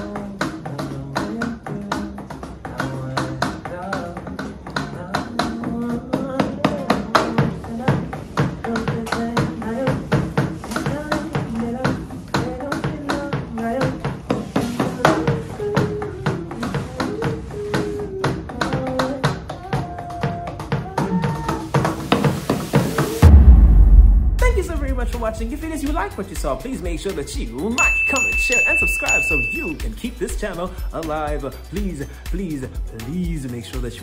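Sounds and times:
electronic drum hits: 23.2s - 26.5s.

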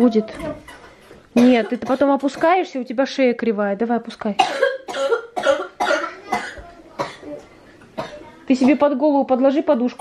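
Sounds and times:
girl coughing: 1.4s - 2.6s, 4.4s - 8.8s.

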